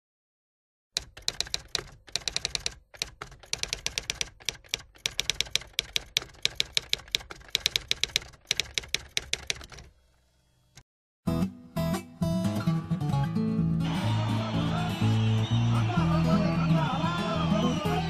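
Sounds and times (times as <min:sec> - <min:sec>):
rapid keyboard typing: 0:01.0 - 0:09.9.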